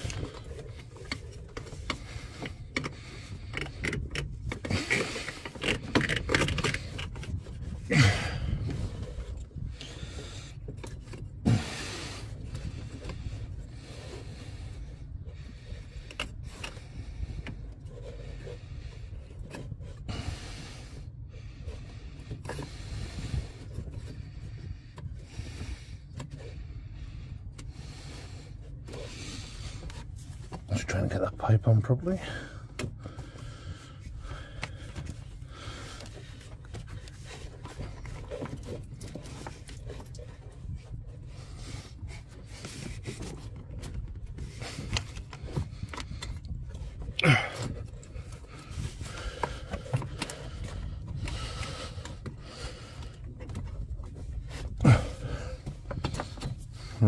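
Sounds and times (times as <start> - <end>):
rustling and scraping of hoses: 0.0 - 57.0
steady low rumble: 0.0 - 57.0.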